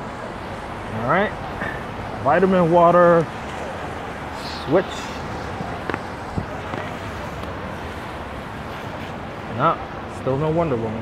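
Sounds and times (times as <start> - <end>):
traffic on wet roads: 0.0 - 11.0.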